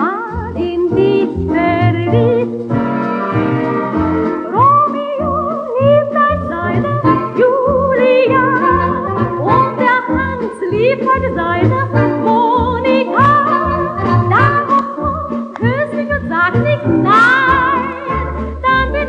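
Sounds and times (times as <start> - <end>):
dance orchestra playing a love song: 0.0 - 19.0.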